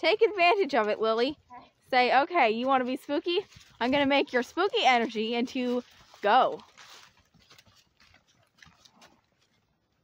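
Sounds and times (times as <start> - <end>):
distant horse hoofbeats on dirt: 0.0 - 10.0.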